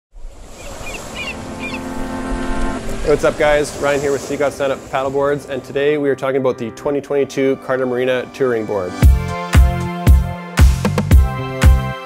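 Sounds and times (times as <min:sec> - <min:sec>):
ocean surf washing: 0:00.1 - 0:07.0
bird chirping: 0:00.5 - 0:02.0
held musical chord: 0:01.3 - 0:04.3.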